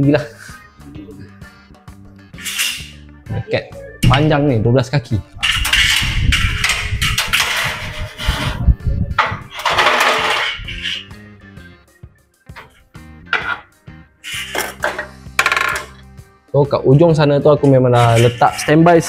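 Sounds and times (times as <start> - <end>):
background music: 0.0 - 19.0
metal bracket rattling and scraping: 2.4 - 3.0, 5.4 - 11.1, 12.5 - 13.7, 14.3 - 16.0, 17.9 - 19.0.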